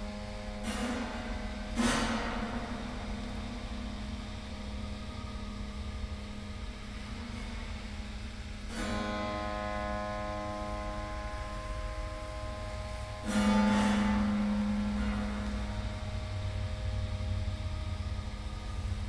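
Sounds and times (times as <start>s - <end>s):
piano strings ringing: 8.7s - 19.0s.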